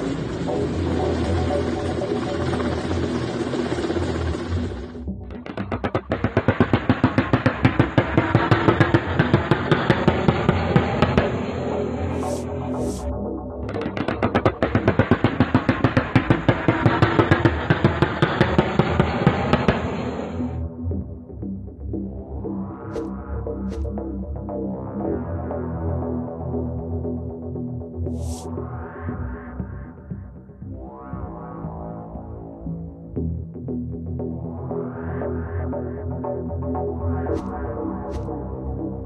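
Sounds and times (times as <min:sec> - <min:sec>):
helicopter rotor roar: 0:00.0 - 0:13.0, 0:13.8 - 0:20.6.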